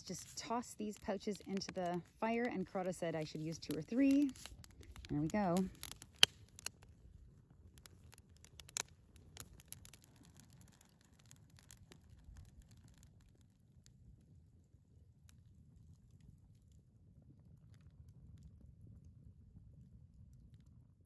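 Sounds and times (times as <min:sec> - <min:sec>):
campfire crackling and popping: 0:00.0 - 0:21.0.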